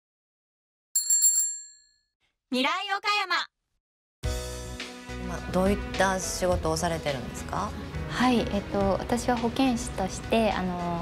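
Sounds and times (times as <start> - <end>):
bright bell ringing: 1.0 - 2.0.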